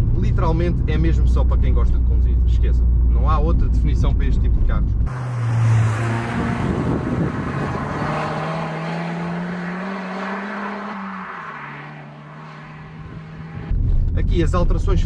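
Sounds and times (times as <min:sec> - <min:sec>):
car engine revving: 0:05.1 - 0:13.8.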